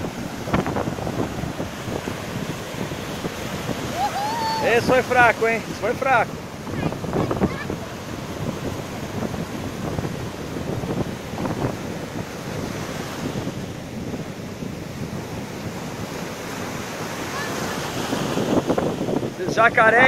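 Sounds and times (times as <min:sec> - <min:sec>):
ocean surf breaking: 0:00.0 - 0:20.0
wind on microphone: 0:00.0 - 0:20.0.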